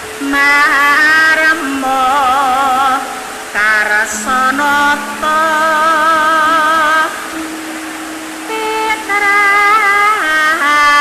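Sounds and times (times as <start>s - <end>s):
low held note: 0.0s - 10.8s
higher sung note: 0.0s - 11.0s.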